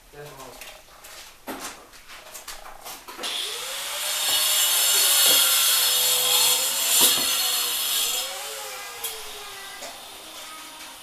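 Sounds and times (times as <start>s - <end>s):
loud hissing cutting noise: 3.2s - 11.0s
power tool motor: 3.2s - 11.0s
knocks: 6.9s - 7.4s.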